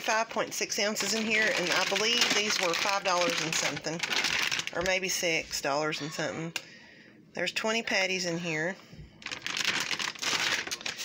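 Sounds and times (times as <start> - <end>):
plastic packaging crinkling: 0.0 - 5.2, 9.2 - 11.0.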